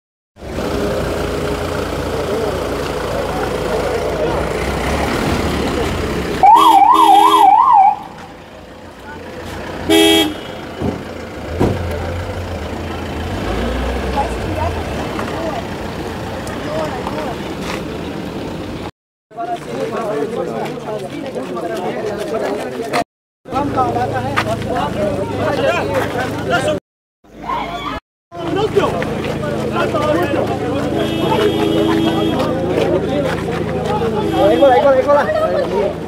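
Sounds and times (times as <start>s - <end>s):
crowd murmur: 0.6s - 9.9s, 11.8s - 18.4s, 19.4s - 36.0s
ambulance siren yelp: 6.4s - 8.2s
horn toot: 6.4s - 8.2s, 9.9s - 10.7s, 30.9s - 32.5s.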